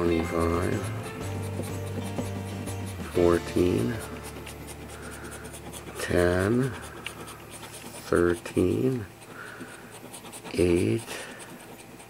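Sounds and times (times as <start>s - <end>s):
coin scratching lottery ticket: 0.0s - 12.0s.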